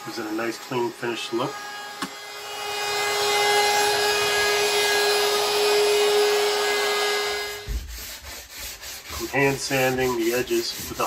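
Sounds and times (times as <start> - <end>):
router whining while cutting wood: 0.0 - 7.8.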